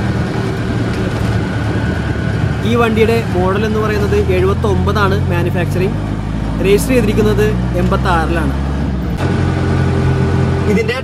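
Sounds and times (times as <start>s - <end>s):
diesel engine drone in cabin: 0.0s - 11.0s
person speaking: 2.6s - 8.6s.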